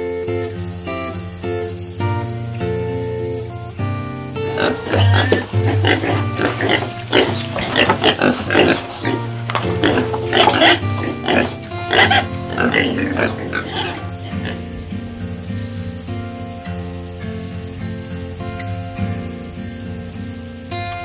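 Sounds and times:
background music: 1.3s - 15.2s
pigs grunting: 4.4s - 14.9s.

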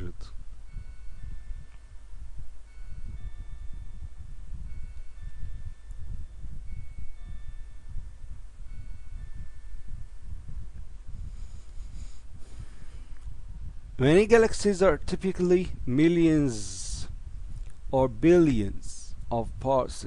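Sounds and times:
faint ringing chime tones: 0.0s - 13.2s
steady low rumble: 0.0s - 20.0s.

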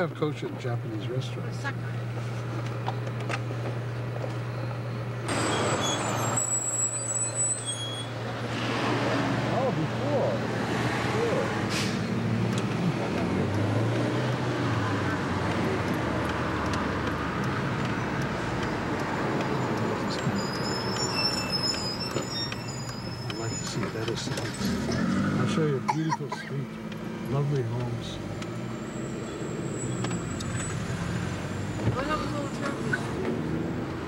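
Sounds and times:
bus passing: 1.2s - 25.9s, 26.6s - 34.0s.

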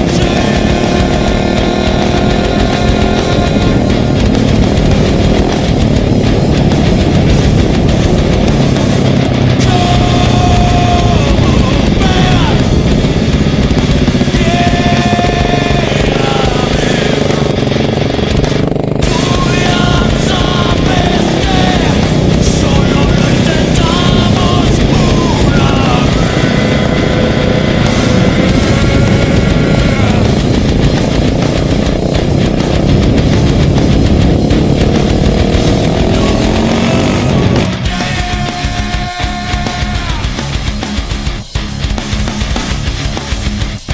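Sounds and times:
motorcycle engine revving: 0.0s - 43.9s
music soundtrack: 0.0s - 43.9s.

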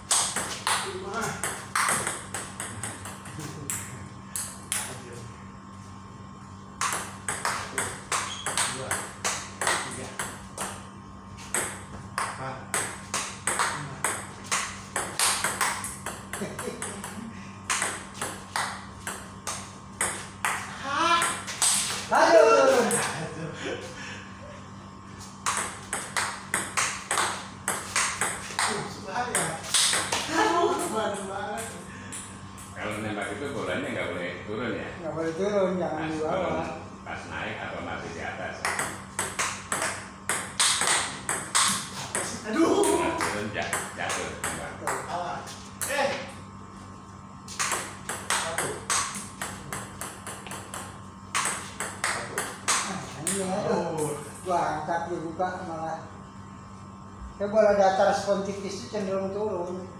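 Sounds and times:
table tennis ball clicks: 38.6s - 42.3s, 47.5s - 53.5s.

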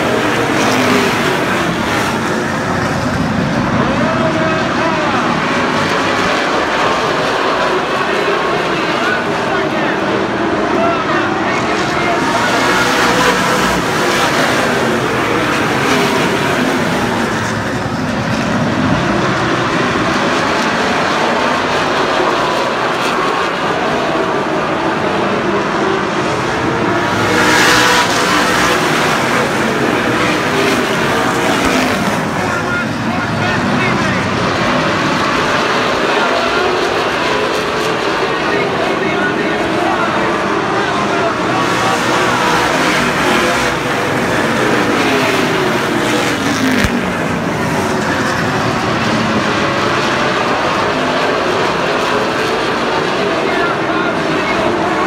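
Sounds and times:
race cars passing at full throttle: 0.0s - 55.0s.

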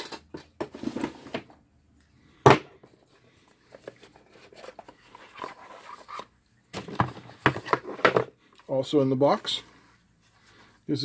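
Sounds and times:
scraping and rustling of a box: 0.6s - 1.5s, 2.9s - 8.4s.

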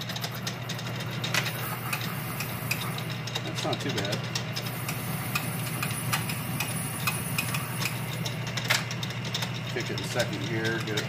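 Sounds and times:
lathe tool ticking: 0.0s - 11.0s
metal lathe motor hum: 0.0s - 11.0s
sharp click: 1.2s - 11.0s.

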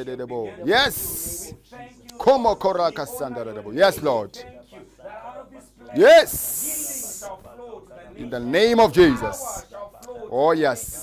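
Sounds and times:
men praying aloud: 0.0s - 11.0s
hissing sibilant voice: 6.1s - 7.3s.

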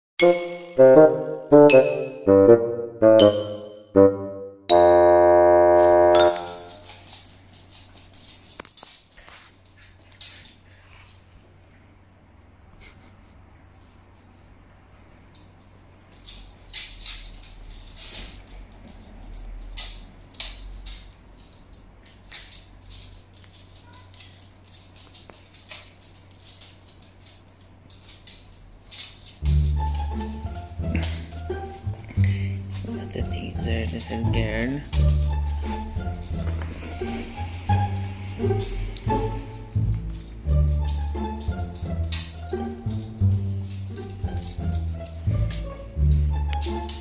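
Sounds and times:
background music: 0.2s - 6.9s, 29.4s - 47.0s
dog claws on wooden floor: 5.8s - 11.6s, 15.2s - 47.0s.

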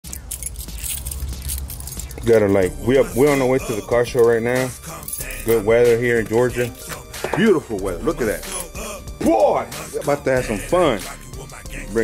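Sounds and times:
keys jangling: 0.0s - 3.8s, 4.5s - 5.7s, 6.5s - 7.1s.

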